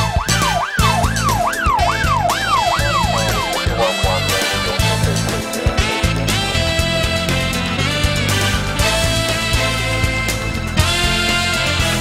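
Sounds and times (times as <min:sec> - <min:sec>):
police siren wailing: 0:00.0 - 0:07.4
drum-driven theme music: 0:00.0 - 0:12.0.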